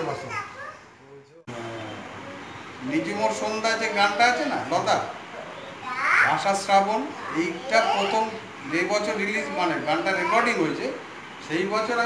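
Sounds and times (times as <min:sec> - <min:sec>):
toddler babbling: 0:00.0 - 0:00.9, 0:05.8 - 0:06.4, 0:07.2 - 0:08.8
man talking: 0:02.8 - 0:05.2.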